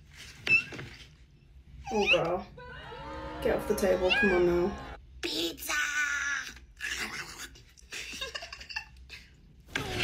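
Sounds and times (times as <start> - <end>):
woman laughing: 7.9 - 9.4.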